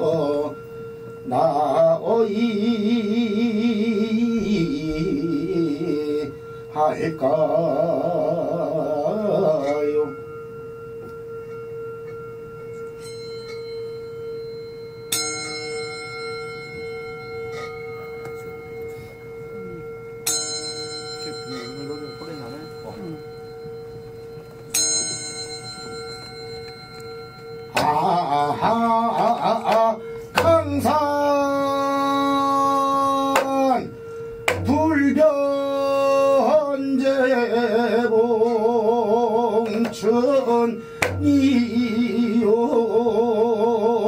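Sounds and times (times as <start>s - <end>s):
brass bowl ringing: 0.0s - 44.0s.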